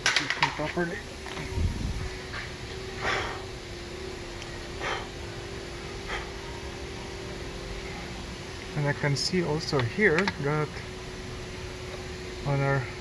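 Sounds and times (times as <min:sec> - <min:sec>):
steady low hum: 0:00.0 - 0:13.0
person breathing close to microphone: 0:03.0 - 0:03.5, 0:06.0 - 0:06.4.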